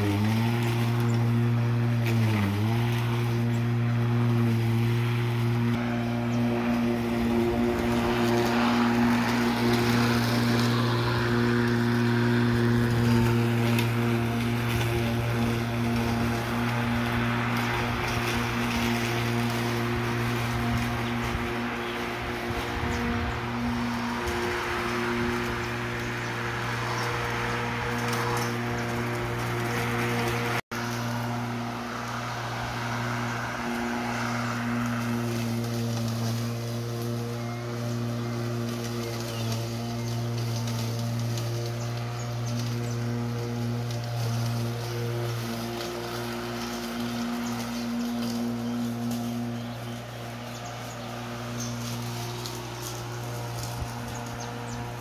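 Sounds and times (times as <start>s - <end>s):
lawn mower running: 0.0s - 55.0s.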